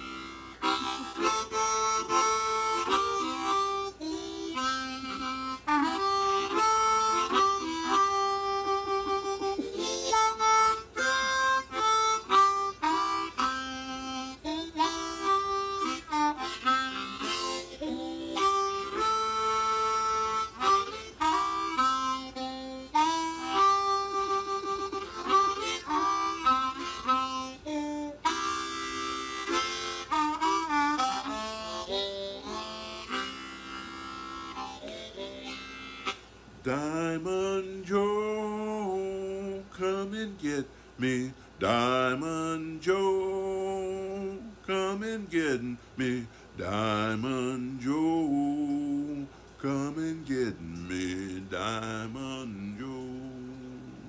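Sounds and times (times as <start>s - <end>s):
blues harmonica melody: 0.0s - 54.0s.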